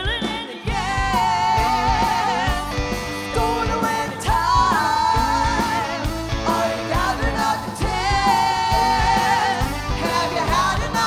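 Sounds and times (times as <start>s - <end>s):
live rock band: 0.0s - 11.0s
woman singing: 0.0s - 11.0s.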